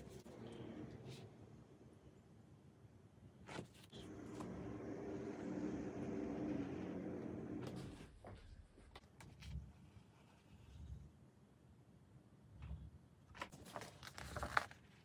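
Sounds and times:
vehicle engine hum passing: 0:03.9 - 0:08.4.

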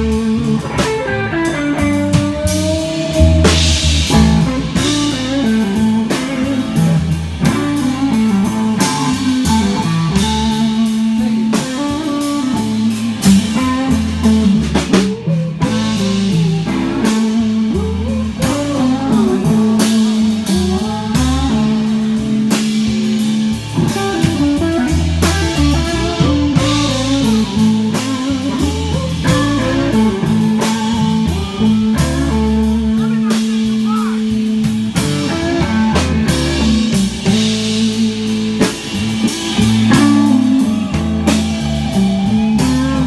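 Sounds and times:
drum kit struck with sticks: 0:00.0 - 0:43.0
electric guitar: 0:00.0 - 0:43.0
steady low bass notes: 0:00.0 - 0:43.0.

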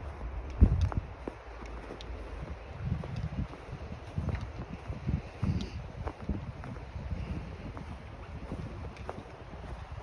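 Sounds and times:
footsteps crunching in snow: 0:00.0 - 0:10.0
wind buffeting microphone: 0:00.0 - 0:10.0.

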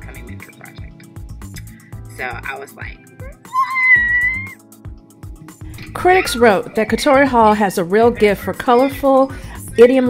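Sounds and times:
soft background music: 0:00.0 - 0:10.0
woman squealing with excitement: 0:03.5 - 0:04.6.

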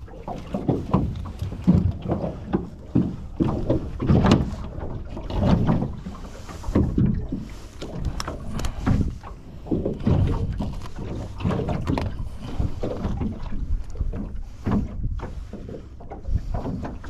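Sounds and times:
water slapping against boat hull: 0:00.0 - 0:17.0.

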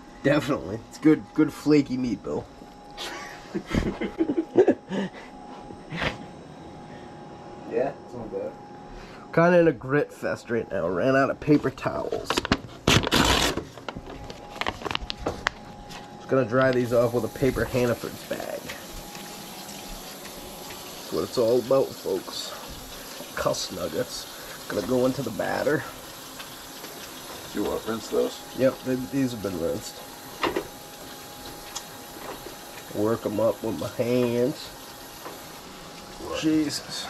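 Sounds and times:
faint steady hum: 0:00.0 - 0:37.0
bag crinkling: 0:12.2 - 0:16.1.

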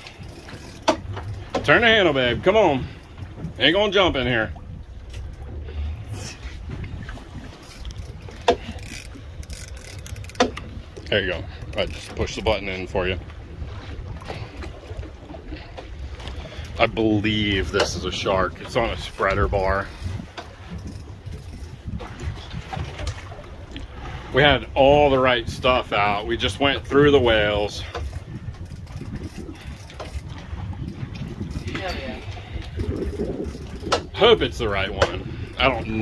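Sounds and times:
boat engine idling: 0:00.0 - 0:36.0
water noise: 0:00.0 - 0:36.0
wind on microphone: 0:00.0 - 0:36.0.

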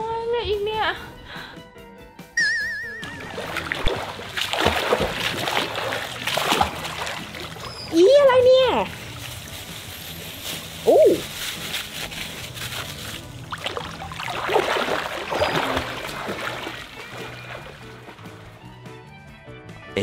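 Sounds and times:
background music: 0:00.0 - 0:20.0
water splashing and churning: 0:03.0 - 0:18.8.

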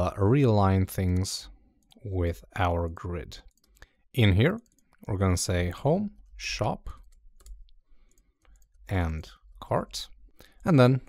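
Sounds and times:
man talking: 0:00.0 - 0:03.5, 0:04.1 - 0:07.0, 0:08.9 - 0:11.0
keyboard and mouse clicks: 0:03.4 - 0:03.9, 0:04.5 - 0:05.1, 0:06.8 - 0:09.0.

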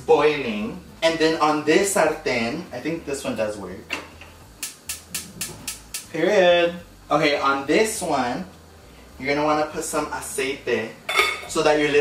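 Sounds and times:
gas burner igniter clicking: 0:03.9 - 0:06.2.

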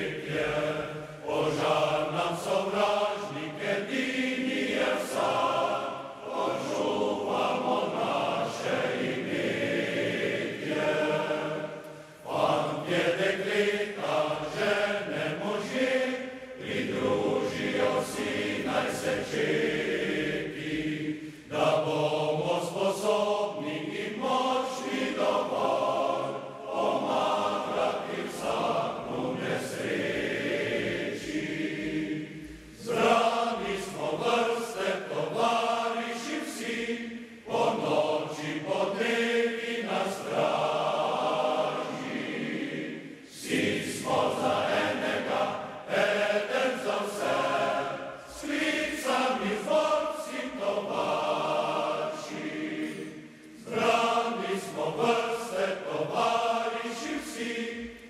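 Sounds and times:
mixed choir singing unaccompanied: 0:00.0 - 0:58.0.

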